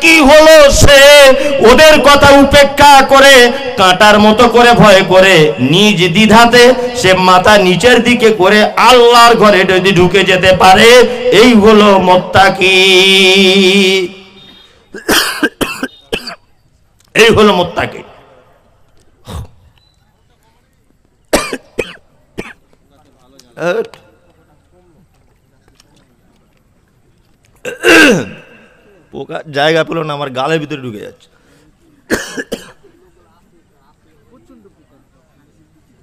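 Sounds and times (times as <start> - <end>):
man coughing: 14.5 - 16.4, 21.3 - 22.6, 27.6 - 28.6, 32.1 - 32.8.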